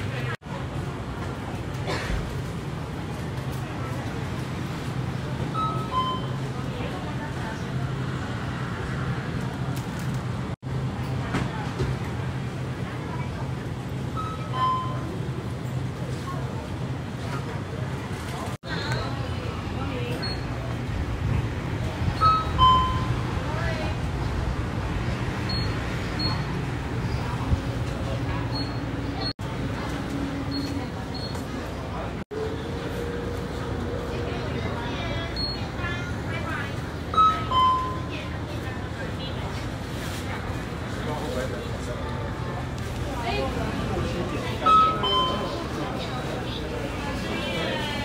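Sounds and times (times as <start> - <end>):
short electronic beeps: 5.5 - 6.5, 14.1 - 15.2, 22.2 - 23.2, 25.4 - 26.6, 28.5 - 29.3, 37.1 - 38.1, 44.6 - 45.6
short high beep: 22.2 - 23.2, 44.6 - 45.6.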